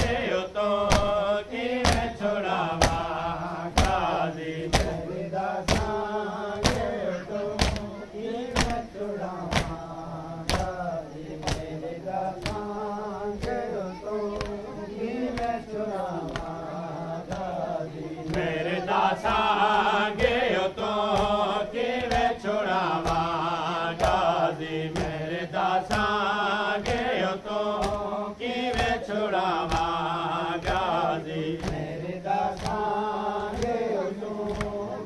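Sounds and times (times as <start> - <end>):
men chanting together: 0.0 - 35.0.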